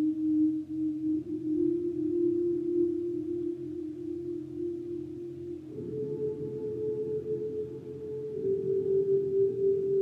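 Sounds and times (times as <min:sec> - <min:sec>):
ambient electric guitar music: 0:00.0 - 0:10.0.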